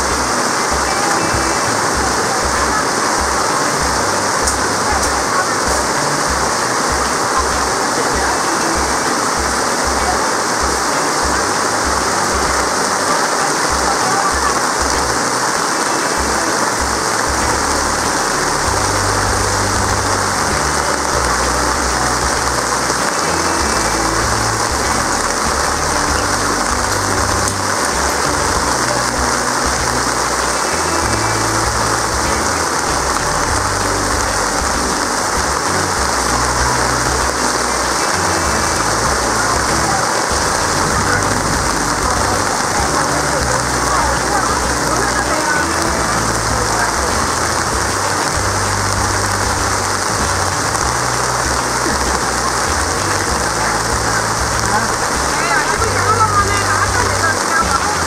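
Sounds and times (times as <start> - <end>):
heavy rain on wet ground: 0.0 - 58.0.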